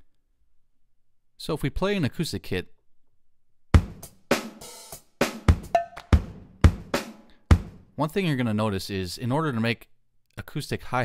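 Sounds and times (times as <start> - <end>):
drum kit hits: 3.8 - 7.9.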